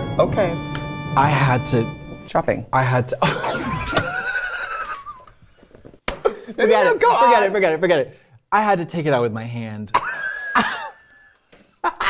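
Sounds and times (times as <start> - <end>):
person laughing in a squeal: 3.2 - 5.3.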